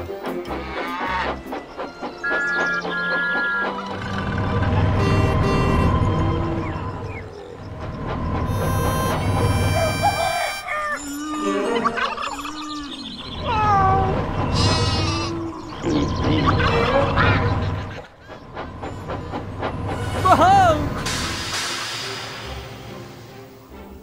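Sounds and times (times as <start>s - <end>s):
background music: 0.0s - 18.0s, 18.9s - 24.0s
gliding farm animal calls: 0.5s - 7.8s, 8.5s - 19.3s.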